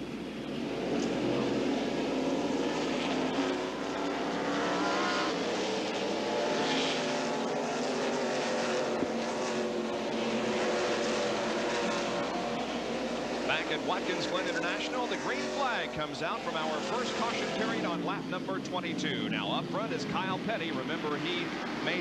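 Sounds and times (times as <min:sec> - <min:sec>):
race car engines roaring: 0:00.0 - 0:22.0.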